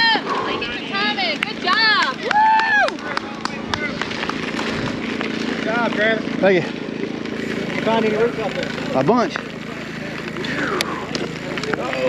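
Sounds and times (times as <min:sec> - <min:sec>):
spectators shouting encouragement: 0:00.0 - 0:03.9
bike tyres rolling on gravel: 0:00.0 - 0:12.0.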